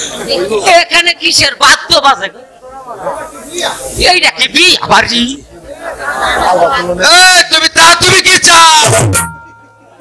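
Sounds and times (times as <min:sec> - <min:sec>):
person speaking into a microphone: 0:00.3 - 0:05.5, 0:06.4 - 0:09.2.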